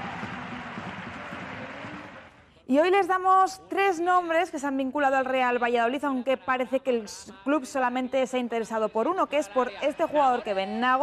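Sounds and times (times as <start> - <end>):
stadium crowd murmur: 0.0 - 2.4.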